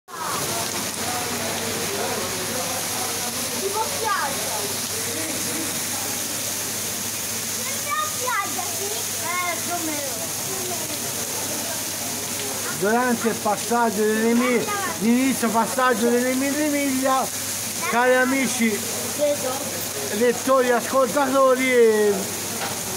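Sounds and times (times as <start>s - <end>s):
heavy rain on pavement: 0.1s - 22.9s.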